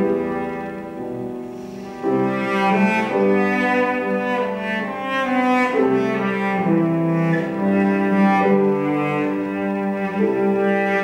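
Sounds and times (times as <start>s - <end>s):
cello bowed notes: 0.0s - 11.0s
piano accompaniment: 0.0s - 11.0s.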